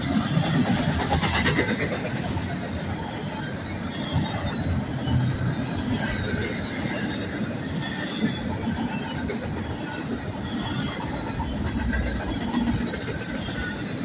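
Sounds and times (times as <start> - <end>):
train wheels rumbling on track: 0.0 - 14.0.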